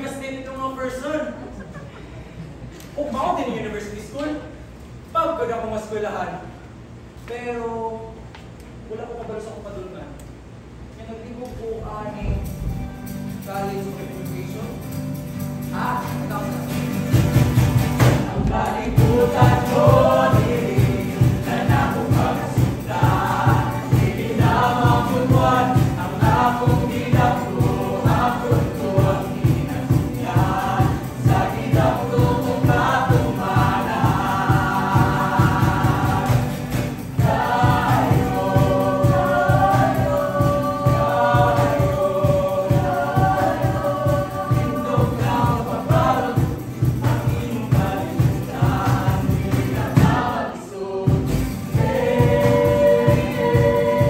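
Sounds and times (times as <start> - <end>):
acoustic guitar: 12.1 - 54.0
voices singing: 15.6 - 54.0.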